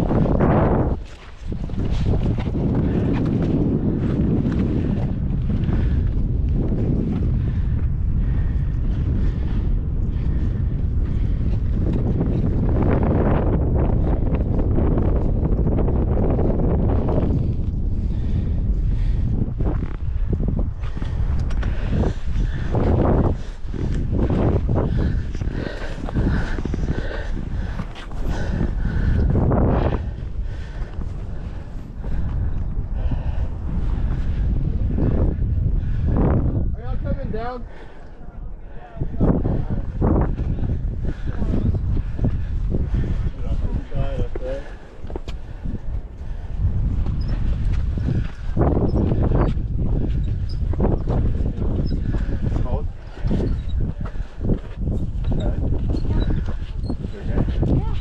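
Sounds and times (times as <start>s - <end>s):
wind buffeting microphone: 0.0s - 58.0s.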